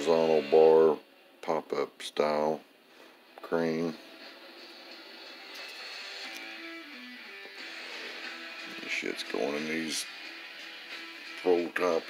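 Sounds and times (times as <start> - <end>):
guitar background music: 0.0 - 1.6, 2.9 - 12.0.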